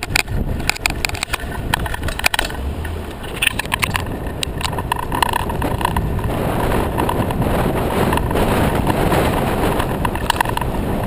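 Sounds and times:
small clicks from bike: 0.0 - 7.4, 8.0 - 10.8
bicycle rattle and road rumble: 0.0 - 11.0.

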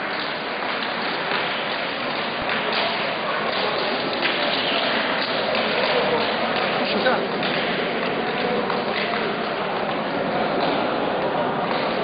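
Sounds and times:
scattered clapping: 0.0 - 12.0
din of many voices: 2.1 - 12.0.

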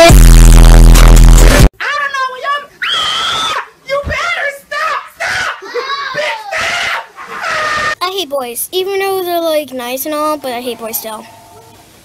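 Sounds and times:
distorted buzzing blast: 0.0 - 1.7
person yelling and screaming: 1.8 - 8.0.

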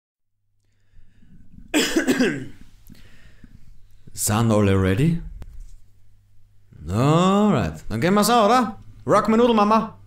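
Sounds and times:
low steady hum: 0.4 - 10.0.

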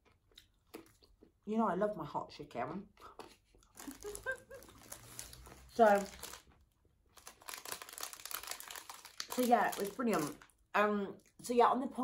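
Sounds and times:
plastic snack packet crinkling: 3.6 - 10.6.

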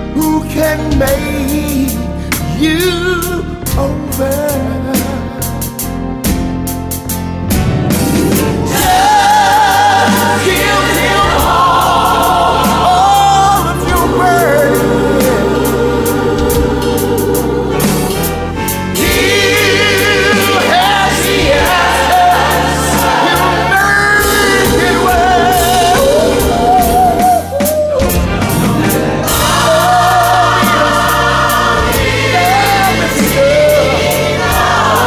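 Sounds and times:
soul gospel song: 0.0 - 35.0.

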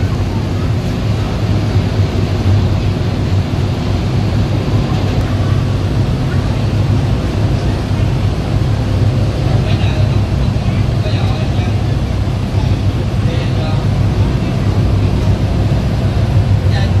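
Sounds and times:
ferry engine droning: 0.0 - 17.0
passengers talking faintly: 0.0 - 17.0.

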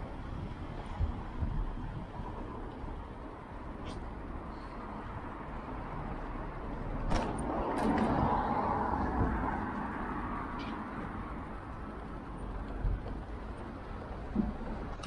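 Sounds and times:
steady low traffic rumble: 0.0 - 15.0.

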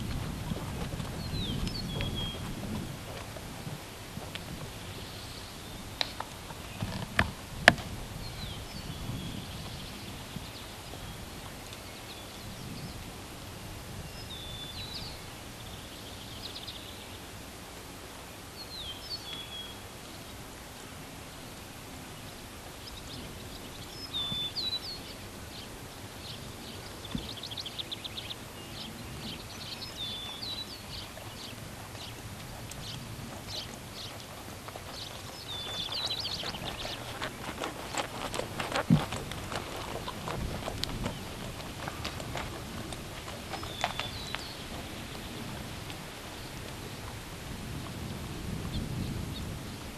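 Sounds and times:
horse footfalls on dirt: 0.0 - 11.9, 27.0 - 27.9, 29.2 - 49.0
songbirds chirping and trilling: 0.0 - 17.5, 18.2 - 49.9.

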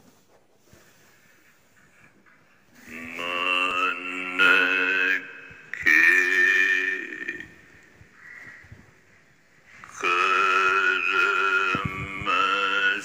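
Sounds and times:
man chanting held notes: 2.8 - 8.0, 9.8 - 13.0.

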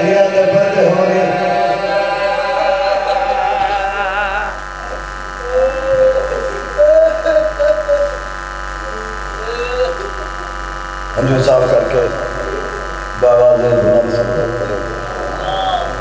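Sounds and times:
man chanting over loudspeaker: 0.0 - 4.6
man chanting through microphone: 0.0 - 6.7, 11.2 - 16.0
sound system hum: 0.0 - 16.0.

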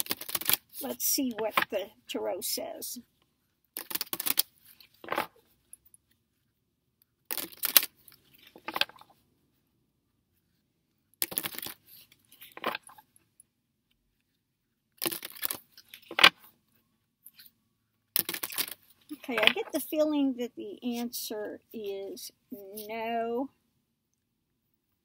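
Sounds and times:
cards being shuffled: 0.0 - 1.7, 3.8 - 5.4, 7.3 - 9.2, 11.2 - 13.1, 15.0 - 16.5, 18.2 - 19.8.

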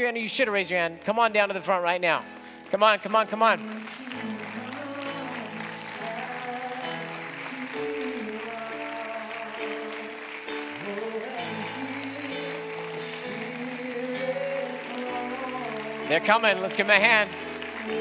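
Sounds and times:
worship band playing chords: 0.0 - 18.0.

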